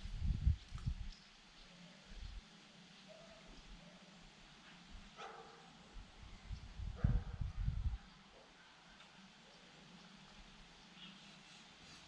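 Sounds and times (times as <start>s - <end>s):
dog bark: 3.1s - 4.1s, 5.2s - 5.8s, 7.0s - 7.4s.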